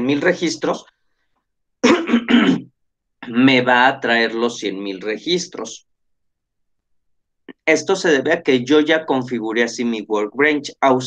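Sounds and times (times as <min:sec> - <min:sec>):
man clearing his throat: 0:01.8 - 0:02.7.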